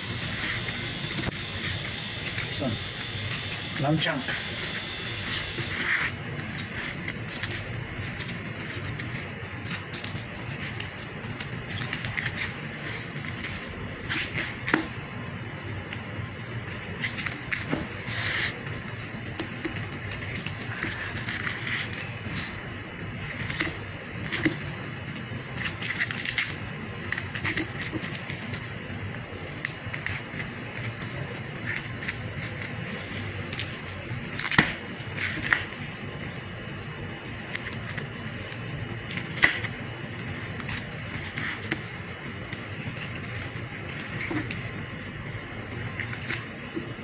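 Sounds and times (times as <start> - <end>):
steady background hum: 0.0 - 47.0.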